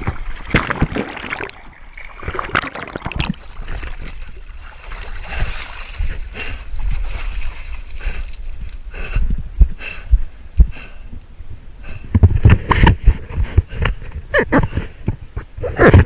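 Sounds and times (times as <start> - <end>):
water sloshing and splashing: 0.0 - 8.8
wind buffeting microphone: 3.6 - 16.0.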